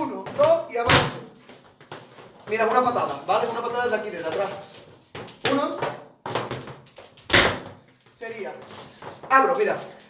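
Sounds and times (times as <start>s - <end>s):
dancer's shoes stamping the floor: 0.0s - 9.5s.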